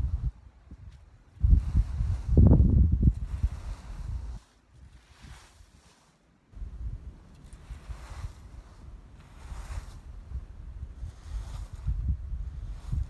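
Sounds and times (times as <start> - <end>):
wind buffeting microphone: 0.0 - 5.6, 6.6 - 13.0
dry straw and leaves swept: 0.0 - 13.0.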